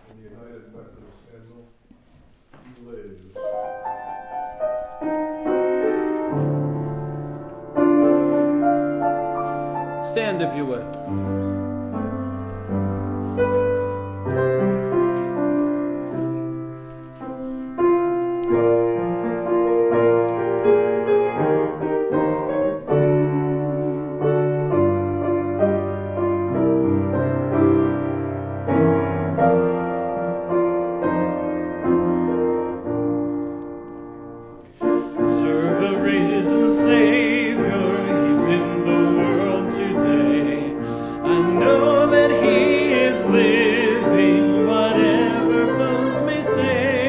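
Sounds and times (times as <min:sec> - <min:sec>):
piano playing hymn chords: 0:02.8 - 0:47.0.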